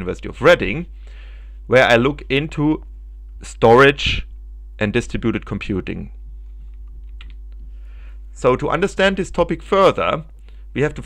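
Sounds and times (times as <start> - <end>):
low electrical hum: 0.0 - 11.0
faint clicks: 6.4 - 7.7.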